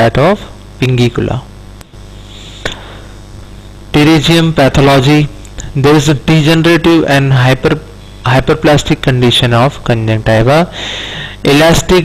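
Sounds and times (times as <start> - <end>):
recording hum and hiss: 0.0 - 12.0.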